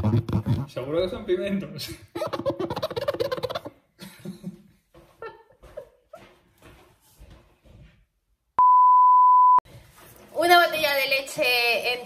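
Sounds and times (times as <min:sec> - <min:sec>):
woman laughing: 0:02.1 - 0:06.3
high-pitched single-tone beep: 0:08.6 - 0:09.6.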